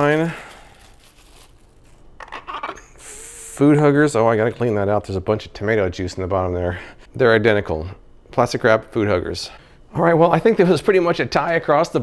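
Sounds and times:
plastic cling wrap crinkling: 0:00.0 - 0:02.5.

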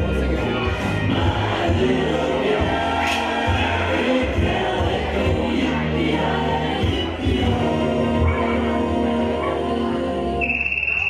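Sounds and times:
steady bass: 0:00.0 - 0:11.0
sung vocals: 0:00.0 - 0:11.0.

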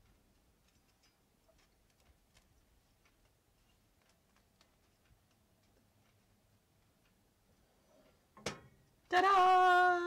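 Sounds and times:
faint ticks: 0:00.0 - 0:09.1.

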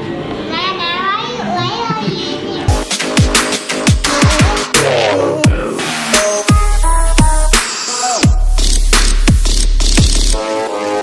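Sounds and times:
high-pitched wordless voice: 0:00.5 - 0:02.7.

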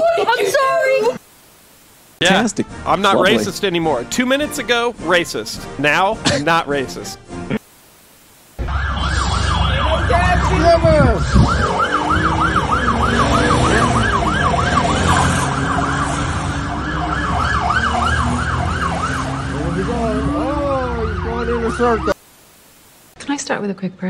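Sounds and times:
tv static hiss: 0:00.0 - 0:04.4, 0:05.1 - 0:08.7, 0:22.1 - 0:23.7
emergency siren yelping: 0:08.6 - 0:22.2.

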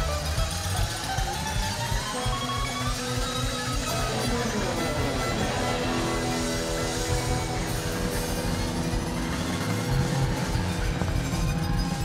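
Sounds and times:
country-rock band playing: 0:00.0 - 0:12.0.

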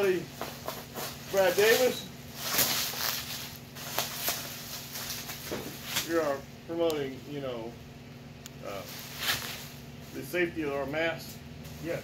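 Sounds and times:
bubble wrap crinkling: 0:00.6 - 0:06.3, 0:08.7 - 0:09.8.

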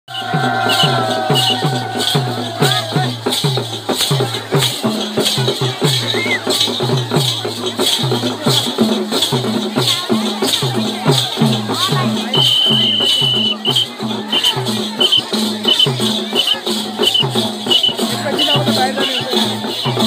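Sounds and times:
crowd voices: 0:00.1 - 0:20.0
drum beating steady rhythm: 0:00.1 - 0:20.0
rattles jingling: 0:12.4 - 0:20.0.

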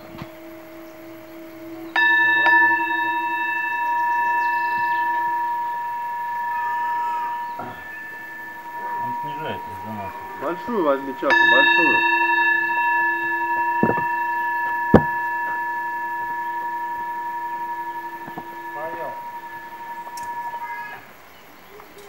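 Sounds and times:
singing bowl ringing: 0:00.0 - 0:22.0
sharp knocks: 0:06.8 - 0:19.5.

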